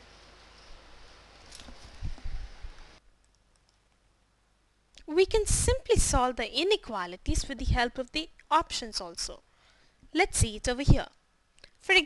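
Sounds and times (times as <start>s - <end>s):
computer mouse clicks: 3.2s - 4.0s.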